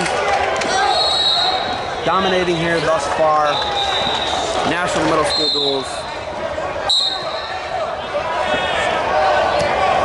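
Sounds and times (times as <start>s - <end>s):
referee's whistle blast: 0.9s - 1.8s, 3.5s - 4.5s, 5.2s - 5.9s, 6.9s - 7.6s.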